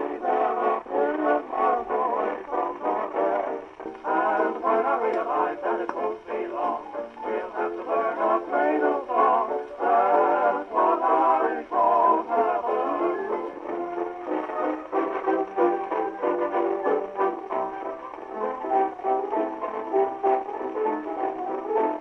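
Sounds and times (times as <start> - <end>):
gramophone record of singer: 0.0 - 22.0.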